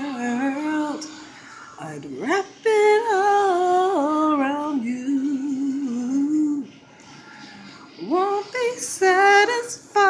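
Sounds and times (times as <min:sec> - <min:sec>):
woman singing unaccompanied: 0:00.0 - 0:06.8, 0:08.0 - 0:10.0.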